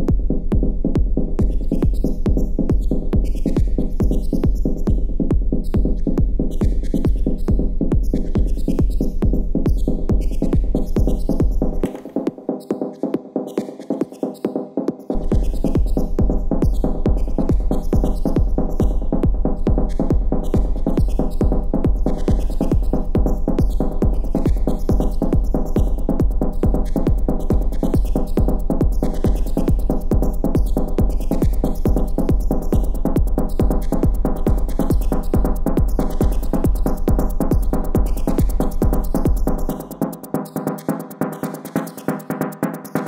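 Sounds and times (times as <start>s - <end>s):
kick drum: 0.0s - 13.2s, 14.5s - 40.0s
hi-hat ticks: 1.4s - 5.0s, 5.6s - 11.8s, 12.6s - 43.0s
electronic dance music: 20.0s - 43.0s.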